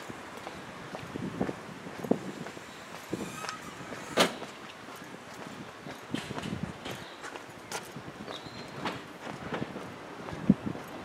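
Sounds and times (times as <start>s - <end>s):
faint street hiss: 0.0s - 11.0s
footsteps on paving stones: 0.0s - 11.0s.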